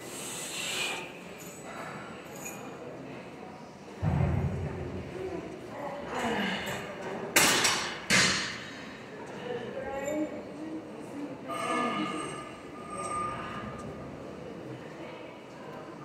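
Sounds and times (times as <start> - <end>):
sharp exhaled breaths: 0.0 - 2.2
low thud: 4.0 - 5.4.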